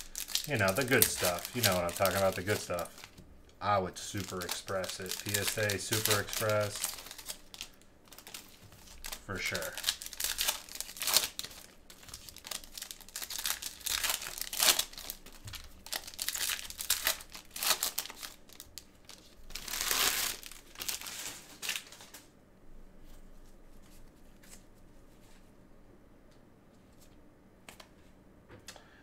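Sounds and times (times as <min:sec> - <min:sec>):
foil wrapper crinkling and tearing: 0:00.0 - 0:22.3.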